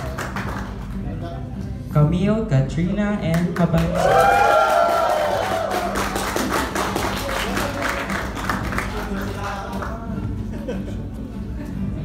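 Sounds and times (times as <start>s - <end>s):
audience clapping: 0.0s - 1.1s, 3.3s - 10.1s
background music: 0.0s - 12.0s.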